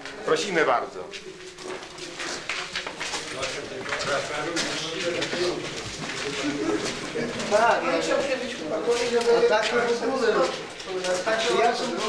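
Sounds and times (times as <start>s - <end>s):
faint murmured voices: 0.0s - 12.0s.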